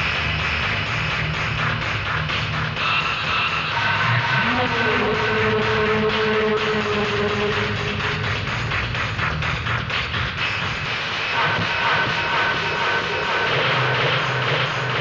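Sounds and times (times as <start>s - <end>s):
chase film soundtrack music: 0.2s - 14.7s.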